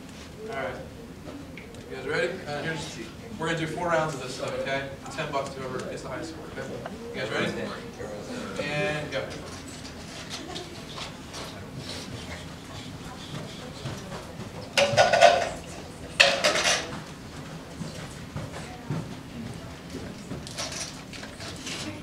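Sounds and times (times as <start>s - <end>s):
students talking quietly: 0.0s - 22.0s.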